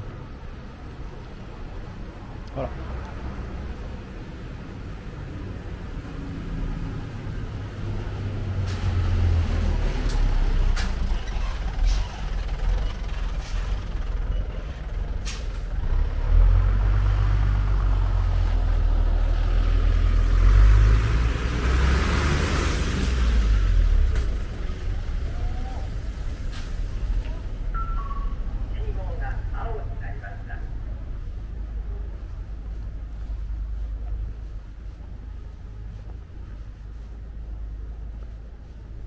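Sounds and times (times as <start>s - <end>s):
street traffic rumble: 0.0s - 39.0s
vehicle passing by: 2.6s - 27.6s.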